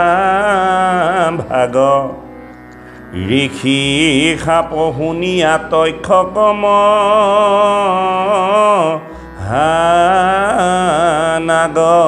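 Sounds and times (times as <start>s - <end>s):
man chanting melodically: 3.1s - 12.0s.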